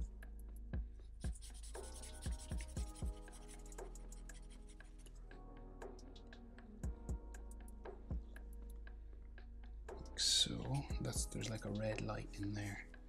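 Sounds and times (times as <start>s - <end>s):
background music with beat: 0.0s - 13.0s
marker drawing on paper: 1.2s - 5.3s.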